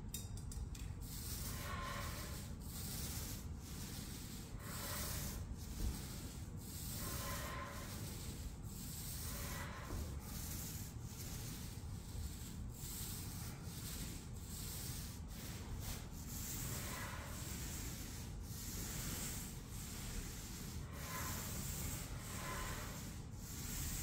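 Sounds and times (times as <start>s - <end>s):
paint roller swishing on ceiling: 0.9s - 24.0s.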